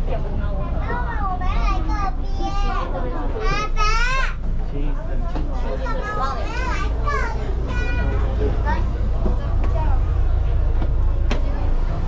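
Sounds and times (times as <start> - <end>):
ferry engine drone: 0.0 - 12.0.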